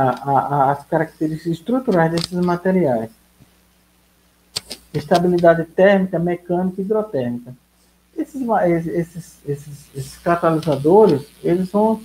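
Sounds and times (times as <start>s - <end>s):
man lecturing: 0.0s - 3.1s, 5.0s - 7.6s, 8.2s - 12.0s
faint steady hum: 0.0s - 12.0s
short sharp clicks: 4.5s - 5.4s.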